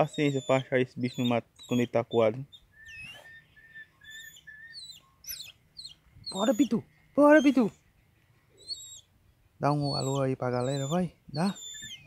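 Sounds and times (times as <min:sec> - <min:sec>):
bird downward-sliding chirps: 0:00.0 - 0:07.8, 0:08.5 - 0:09.1, 0:09.7 - 0:12.0
bird whistled notes: 0:00.1 - 0:07.8, 0:09.8 - 0:12.0.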